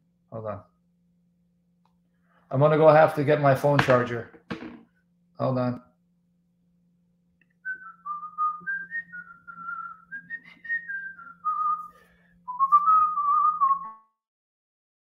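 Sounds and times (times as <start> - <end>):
man whistling a tune: 7.6 - 14.0.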